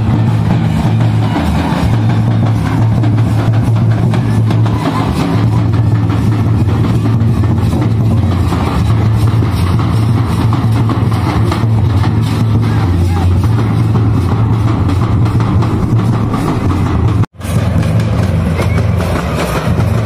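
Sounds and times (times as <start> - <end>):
crowd noise: 0.0 - 20.0
drums playing dance rhythm: 0.0 - 20.0.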